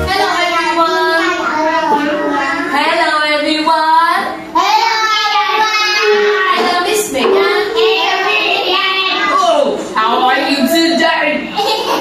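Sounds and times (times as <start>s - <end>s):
children and teacher singing: 0.0s - 11.3s.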